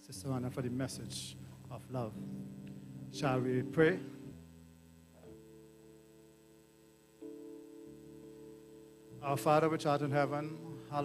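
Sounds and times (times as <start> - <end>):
sustained keyboard chords: 0.0 - 11.0.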